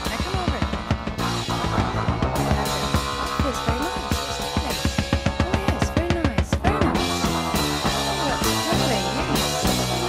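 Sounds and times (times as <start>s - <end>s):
cymbals: 0.0s - 10.0s
drum kit fill: 0.0s - 10.0s
held instrument notes: 0.0s - 10.0s.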